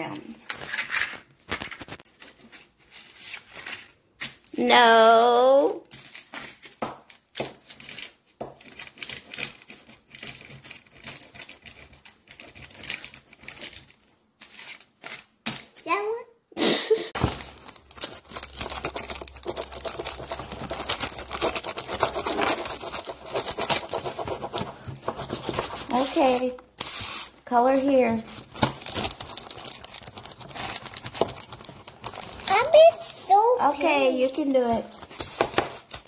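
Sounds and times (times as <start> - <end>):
paper liner crinkling: 0.6 - 4.5, 5.9 - 15.8, 17.2 - 36.0.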